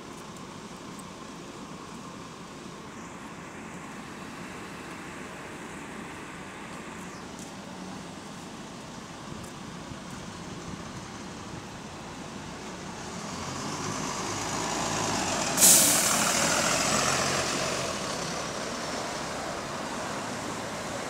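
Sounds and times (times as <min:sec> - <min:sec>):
bus diesel engine accelerating: 0:00.0 - 0:21.0
loud hiss of released air: 0:15.5 - 0:16.4.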